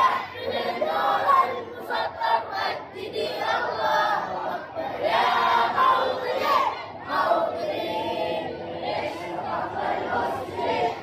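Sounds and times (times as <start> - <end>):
boys singing together: 0.0 - 11.0.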